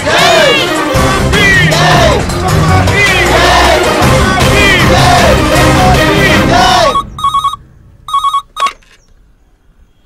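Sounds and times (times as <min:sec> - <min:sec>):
loud music with voices: 0:00.0 - 0:07.0
telephone trilling ring: 0:06.9 - 0:08.8.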